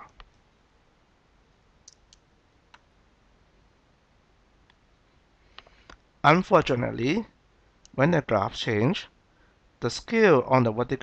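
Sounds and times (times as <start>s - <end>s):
faint computer mouse clicks: 1.8s - 2.9s.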